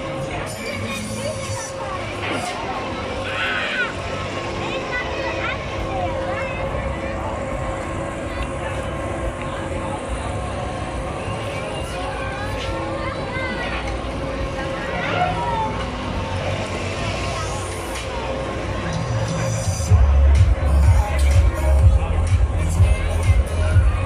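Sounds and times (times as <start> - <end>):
people's voices: 0.0 - 24.0.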